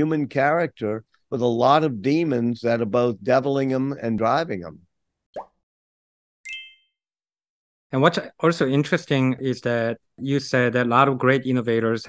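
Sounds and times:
bright chime: 6.5s - 6.9s.

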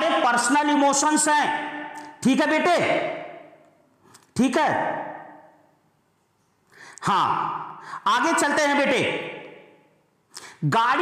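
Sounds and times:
man breathing in: 6.7s - 7.0s, 7.8s - 8.0s.

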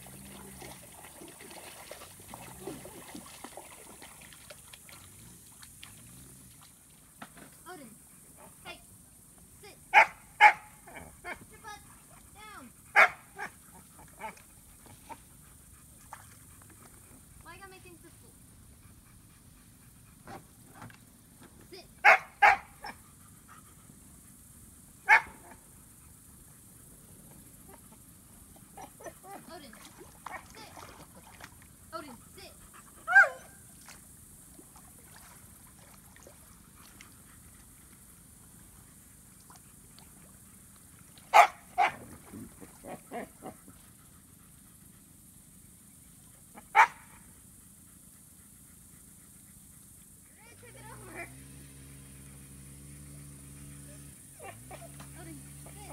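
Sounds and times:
dog barking: 9.9s - 11.1s, 12.9s - 13.5s, 22.0s - 23.0s, 25.1s - 25.6s, 33.1s - 33.6s, 41.3s - 42.0s, 46.6s - 47.2s.

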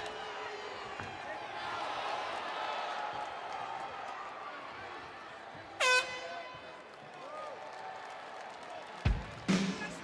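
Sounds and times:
arena horn blast: 5.8s - 6.4s.

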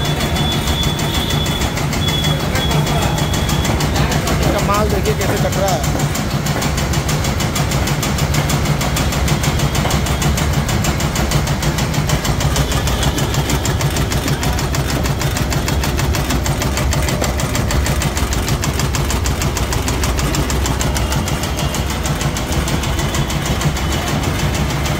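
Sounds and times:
cutting machine chopping clatter: 0.0s - 24.9s.

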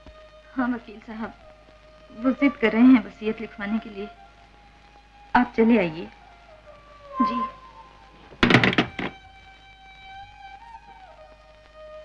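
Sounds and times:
telephone handset clattering: 8.4s - 9.2s.

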